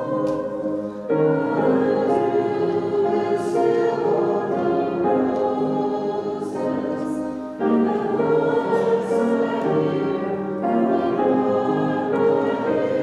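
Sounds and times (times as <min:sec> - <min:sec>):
group singing a hymn: 0:00.0 - 0:13.0.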